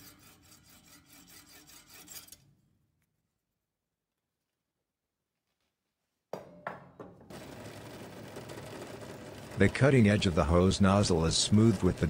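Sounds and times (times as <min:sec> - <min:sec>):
sharp knocks: 0:06.3 - 0:07.3
drill press motor running: 0:07.3 - 0:12.0.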